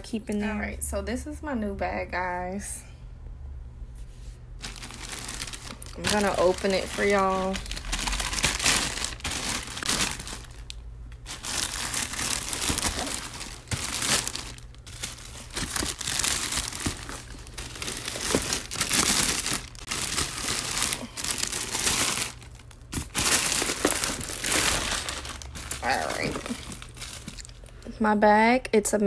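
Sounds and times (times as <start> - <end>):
plastic packaging crinkling: 4.5 - 27.9.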